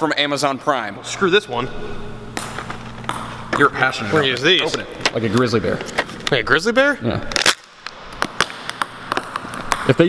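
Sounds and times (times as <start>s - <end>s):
ping-pong balls bouncing on floor: 2.3s - 3.9s, 7.9s - 10.0s.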